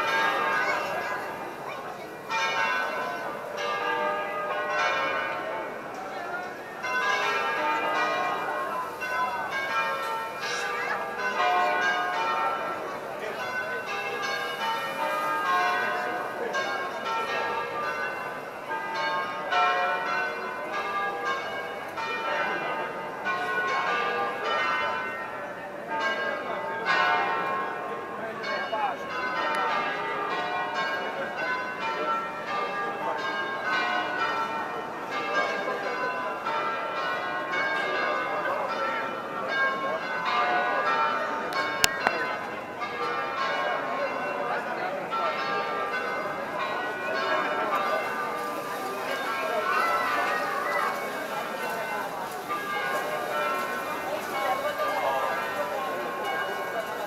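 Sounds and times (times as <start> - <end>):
church bells pealing: 0.0 - 57.0
crowd chatter: 0.0 - 57.0.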